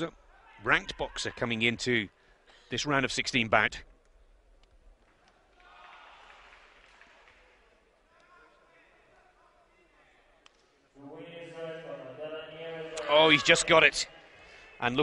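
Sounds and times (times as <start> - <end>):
man speaking over public address: 0.0 - 2.1, 2.7 - 3.9, 11.0 - 15.0.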